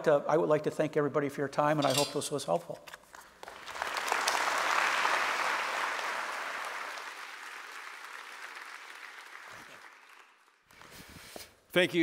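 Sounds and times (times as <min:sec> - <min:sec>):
audience applauding: 0:03.4 - 0:10.9.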